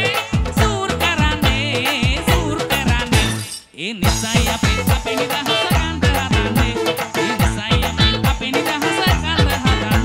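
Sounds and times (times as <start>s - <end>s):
live band playing upbeat song: 0.0s - 10.0s
person singing lead vocal: 0.0s - 10.0s.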